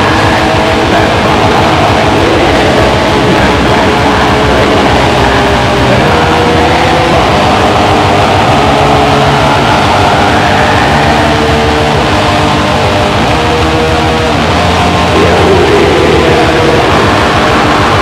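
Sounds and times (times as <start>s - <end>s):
black metal music: 0.0s - 18.0s.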